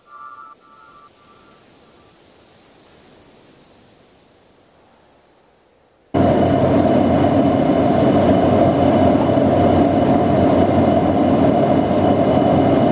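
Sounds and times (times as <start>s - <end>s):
faint steady hum: 0.0s - 12.9s
jet airliner cabin roar: 6.1s - 12.9s.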